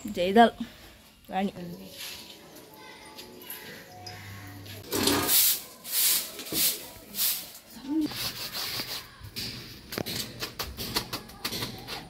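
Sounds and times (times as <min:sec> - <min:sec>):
broom swishing over concrete: 0:05.0 - 0:09.2.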